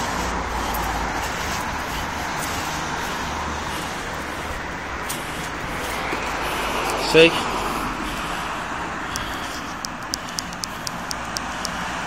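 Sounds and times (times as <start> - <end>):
road traffic noise: 0.0 - 12.0
light regular ticking: 8.2 - 12.0.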